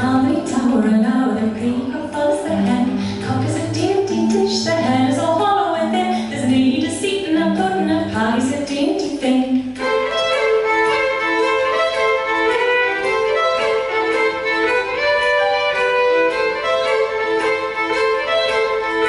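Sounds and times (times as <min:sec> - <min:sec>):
woman singing: 0:00.0 - 0:09.8
solo fiddle playing folk tune: 0:09.8 - 0:19.0.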